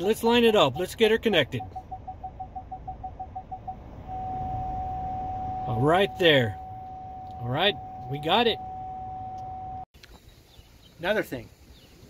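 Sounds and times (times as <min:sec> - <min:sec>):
parking sensor beeping rapidly: 0:00.2 - 0:09.8.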